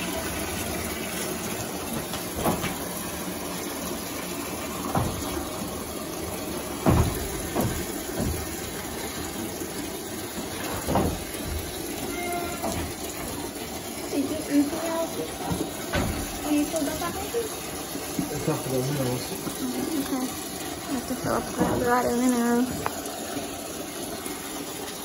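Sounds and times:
water running into bucket: 0.0 - 25.0
knocks on bucket: 4.9 - 5.5, 6.8 - 8.8, 10.6 - 11.8.

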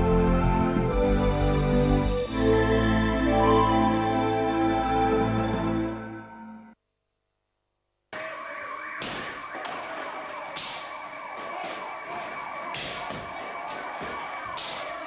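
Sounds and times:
emergency vehicle sirens: 8.2 - 15.0.

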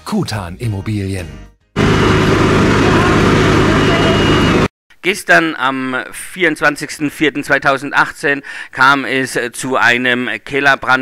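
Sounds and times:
fire engine running: 1.8 - 4.7.

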